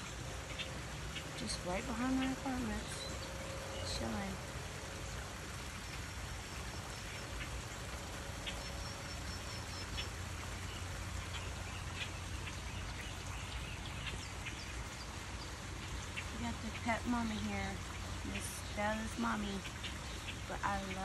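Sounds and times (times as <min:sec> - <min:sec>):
small stream rushing: 0:00.0 - 0:21.0.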